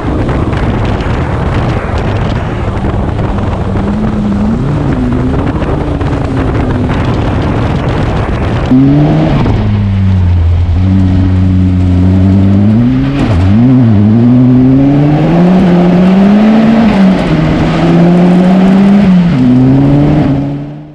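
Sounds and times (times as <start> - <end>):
buggy engine revving: 0.0 - 20.9.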